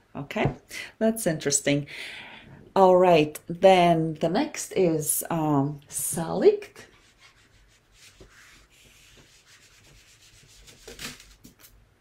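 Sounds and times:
eraser rubbing on whiteboard: 6.8s - 11.4s.

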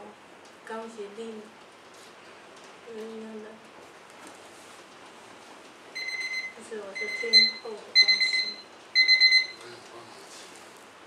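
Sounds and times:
electronic alarm beeping: 6.0s - 9.6s.

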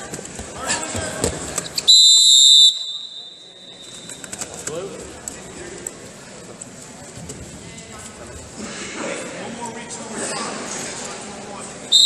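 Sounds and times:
referee's whistle blast: 1.9s - 4.1s.

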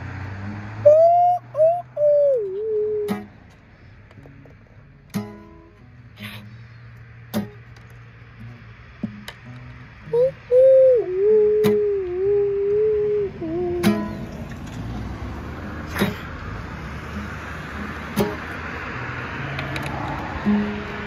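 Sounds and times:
acoustic guitar strums: 2.2s - 21.0s.

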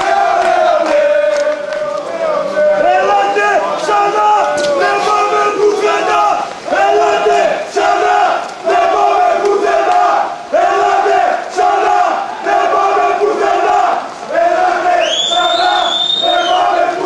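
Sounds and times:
football supporters chanting: 0.0s - 17.0s.

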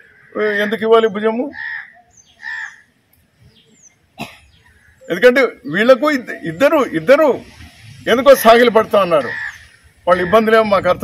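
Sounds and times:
crow cawing: 0.0s - 0.9s, 1.5s - 3.0s, 9.2s - 10.5s
small birds chirping: 0.0s - 7.3s.

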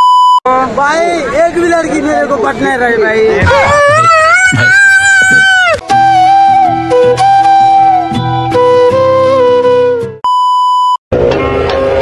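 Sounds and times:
background music melody: 5.8s - 10.2s.

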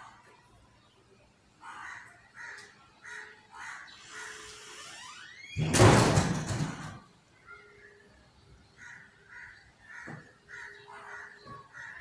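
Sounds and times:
crow cawing: 1.6s - 4.7s, 8.8s - 12.0s.

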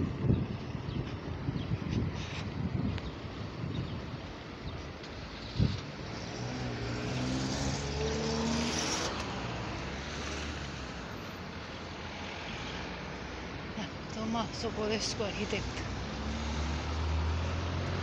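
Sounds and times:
car driving past: 5.6s - 11.0s, 15.8s - 18.0s.

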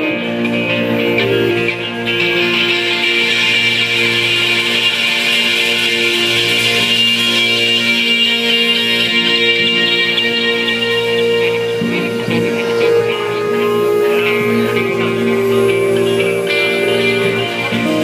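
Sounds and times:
electric guitars: 0.0s - 18.0s
keyboard chords: 0.0s - 18.0s.

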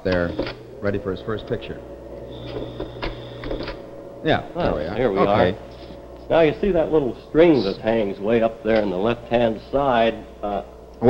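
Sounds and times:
projector mechanical clicks: 0.0s - 4.8s
slide projector hum: 0.0s - 11.0s.

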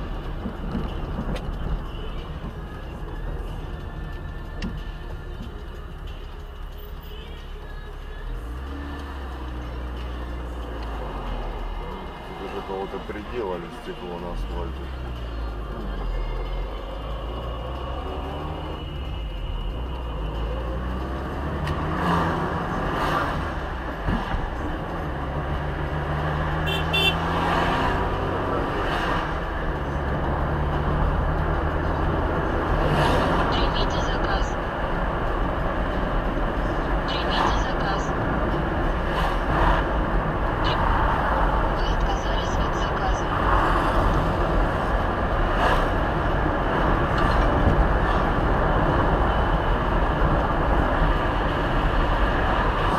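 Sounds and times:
car engine and road noise: 0.0s - 52.9s.

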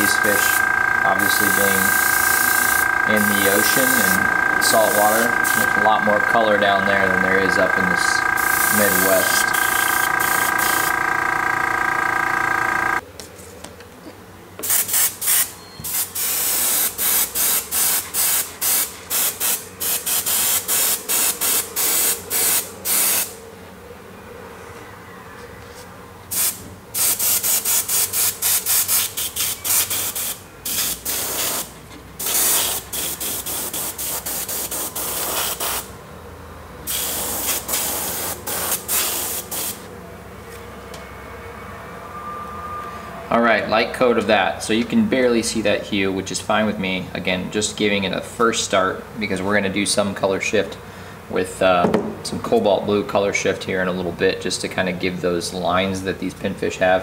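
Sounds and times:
steady hum: 0.0s - 13.0s
airbrush spraying hiss: 4.8s - 5.7s, 14.6s - 23.3s, 26.3s - 35.9s, 36.9s - 39.9s.

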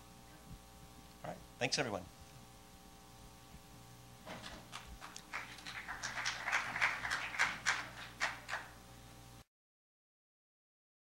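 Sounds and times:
audience applauding: 4.4s - 8.8s.

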